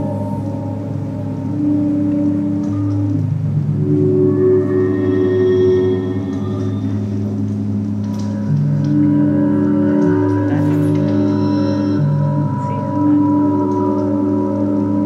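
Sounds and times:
ambient electronic drone music: 0.0s - 15.0s.

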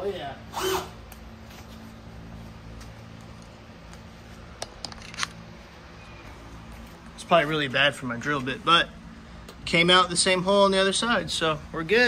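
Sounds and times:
steady low hum: 0.0s - 12.0s
camera handling clicks: 4.6s - 5.4s.

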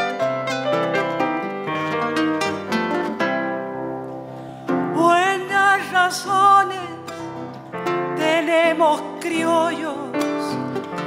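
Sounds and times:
plucked string notes: 0.0s - 11.0s.

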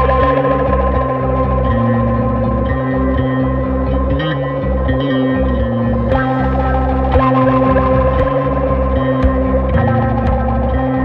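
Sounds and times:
electric guitar with echo effects: 0.0s - 11.0s
sustained low bass notes: 0.0s - 11.0s
percussion hits: 7.1s - 10.9s.

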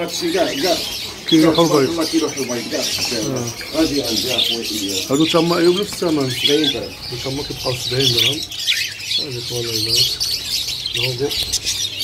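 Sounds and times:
budgerigars chirping: 0.0s - 12.0s.

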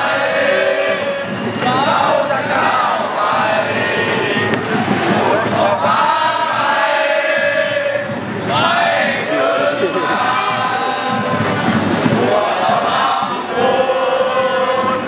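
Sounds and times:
crowd chanting and singing: 0.0s - 15.0s.

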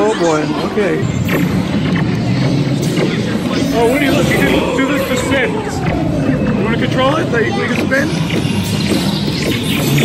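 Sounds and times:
ride soundtrack music and effects: 0.0s - 10.0s
ride vehicle rumbling on track: 0.0s - 10.0s.

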